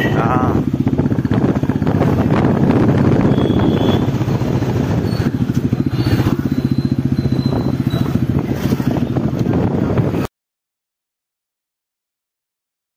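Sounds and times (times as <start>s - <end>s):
motorcycle engine running: 0.0s - 10.3s.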